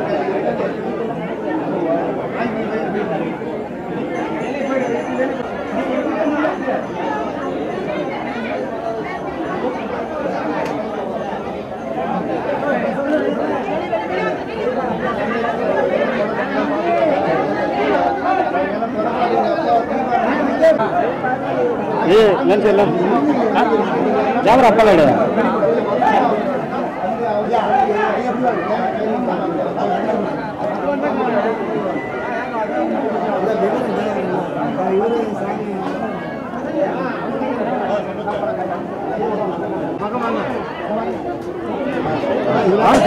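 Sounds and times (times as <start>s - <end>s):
crowd chatter: 0.0s - 43.0s.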